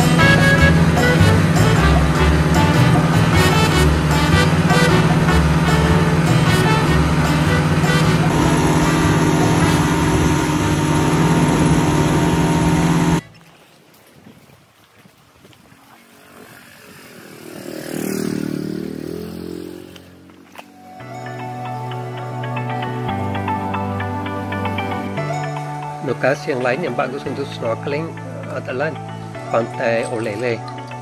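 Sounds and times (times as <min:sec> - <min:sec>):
motorboat engine running: 0:00.0 - 0:13.6, 0:15.6 - 0:31.0
water rushing along hull: 0:00.0 - 0:31.0.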